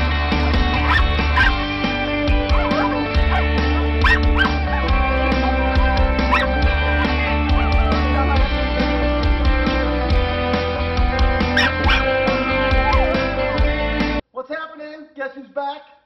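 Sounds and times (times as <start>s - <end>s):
background music: 0.0s - 14.3s
small dog yipping and whining: 0.9s - 1.6s, 4.0s - 4.5s, 11.6s - 12.0s, 12.8s - 13.2s.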